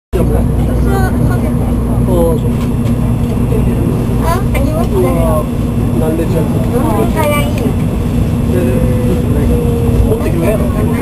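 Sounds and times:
people talking: 0.2s - 11.0s
train carriage hum: 0.2s - 11.0s.

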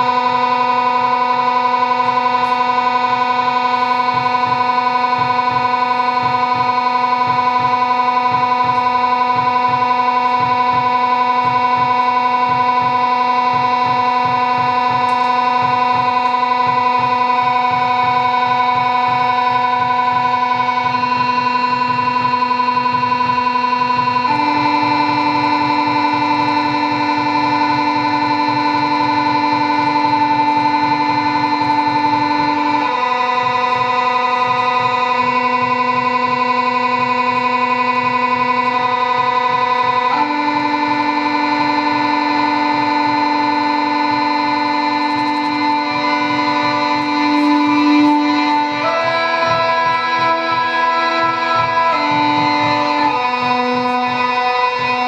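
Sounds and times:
low pulsing electronic layer: 0.0s - 55.0s
synthesizer drone chords: 0.0s - 55.0s.

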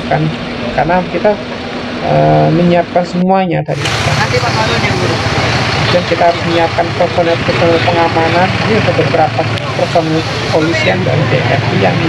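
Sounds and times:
engine running: 0.0s - 12.0s
crowd chatter: 3.7s - 12.0s.

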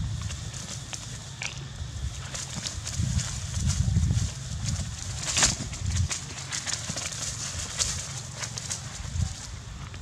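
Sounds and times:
low rumble on microphone: 0.0s - 10.0s
light clicks and rustles: 0.2s - 10.0s.

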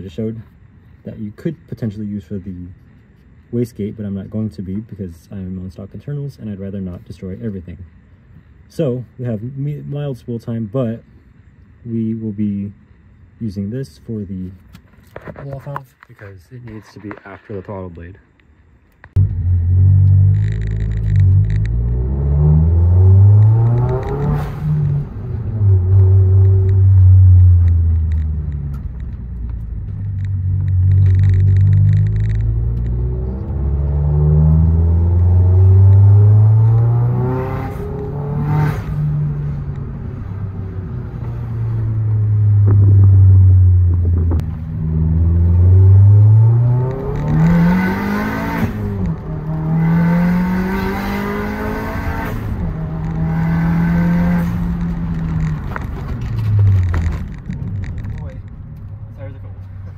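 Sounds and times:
car engine accelerating: 19.1s - 59.9s.

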